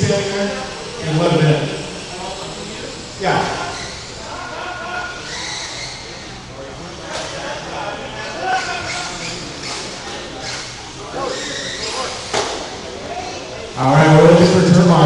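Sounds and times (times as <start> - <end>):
murmur of voices: 0.0 - 15.0.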